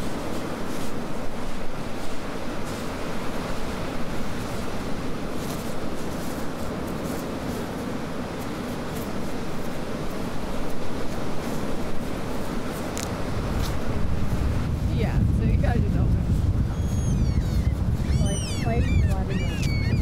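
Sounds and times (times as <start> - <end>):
surf on beach: 0.0 - 20.0
wind rumble on microphone: 0.0 - 20.0
gull calls: 16.7 - 20.0.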